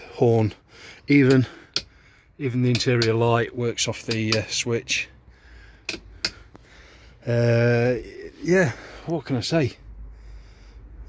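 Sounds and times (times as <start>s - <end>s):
toggle switches clicking: 1.2s - 1.9s, 2.7s - 3.2s, 4.0s - 4.5s, 5.8s - 6.7s.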